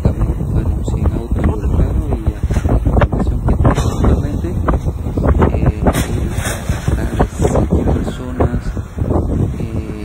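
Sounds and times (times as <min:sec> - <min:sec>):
car road rumble: 0:00.0 - 0:10.0
wind buffeting microphone: 0:00.0 - 0:10.0.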